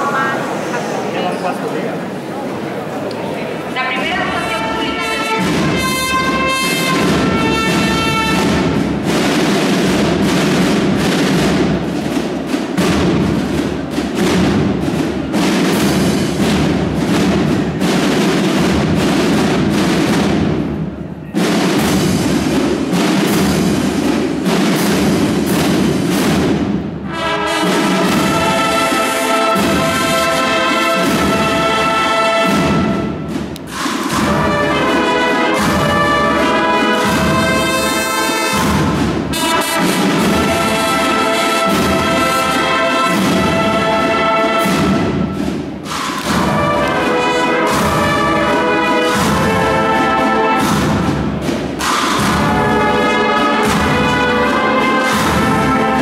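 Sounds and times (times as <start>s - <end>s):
brass band playing a march: 3.8s - 56.0s
rapid drum strokes: 4.0s - 56.0s.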